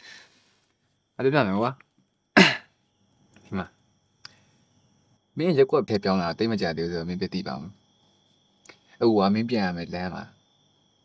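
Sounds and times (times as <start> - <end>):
man clearing throat: 2.4 - 2.7.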